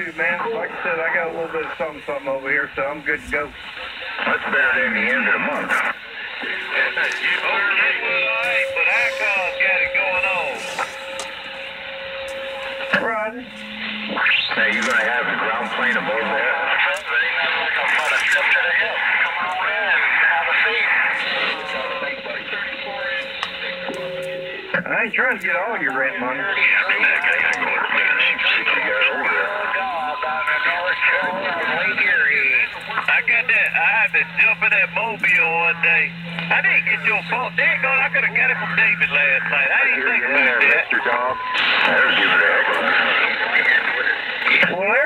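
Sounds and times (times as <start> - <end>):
radio static hiss: 0.0 - 45.0
radio click: 3.3 - 11.6, 12.2 - 22.6, 23.2 - 44.9
steady whistle tone: 6.1 - 18.0, 26.4 - 42.7.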